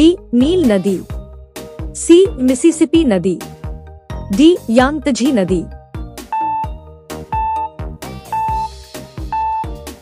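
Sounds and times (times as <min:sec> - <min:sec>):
light background music: 0:00.0 - 0:10.0
short high electronic beep: 0:07.4 - 0:08.7, 0:09.3 - 0:09.8.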